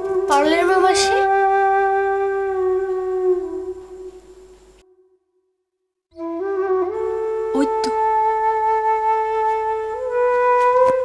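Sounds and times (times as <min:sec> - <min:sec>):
flute-like held note: 0:06.2 - 0:11.0.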